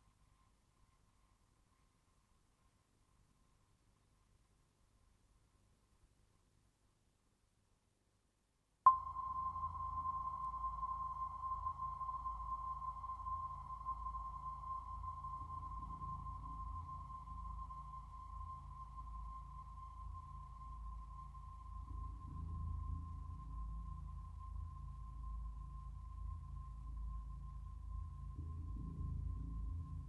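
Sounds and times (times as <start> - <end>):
steady high electronic tone: 8.9 - 20.7.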